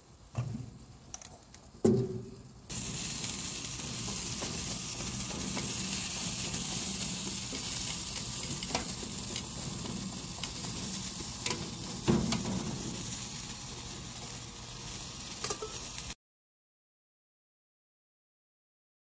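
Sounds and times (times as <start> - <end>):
green beans sizzling in a skillet: 2.7 - 16.2
tongs clicking on a pan: 3.2 - 12.8, 15.4 - 16.0.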